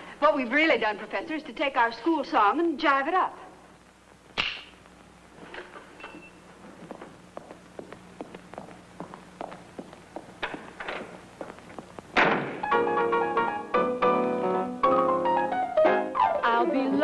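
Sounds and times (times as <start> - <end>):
footsteps and shuffling: 4.9 - 12.7.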